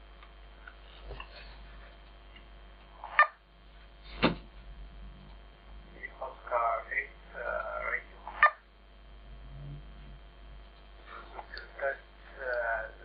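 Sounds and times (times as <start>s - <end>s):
faint electrical hum: 0.0s - 13.0s.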